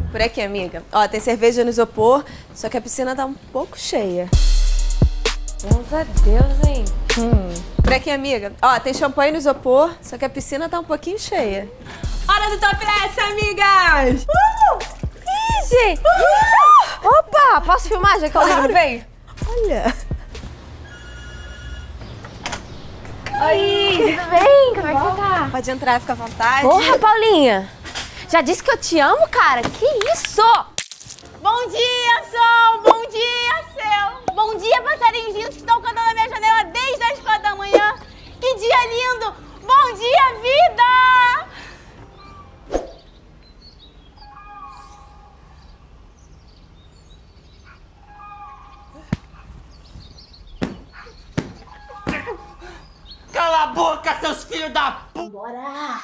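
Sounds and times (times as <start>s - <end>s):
birds chirping: 5.7s - 30.5s, 31.6s - 40.8s, 41.4s - 55.3s.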